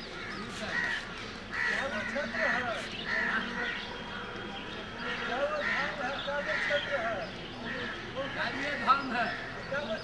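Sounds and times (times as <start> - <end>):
crows cawing: 0.0 - 9.9.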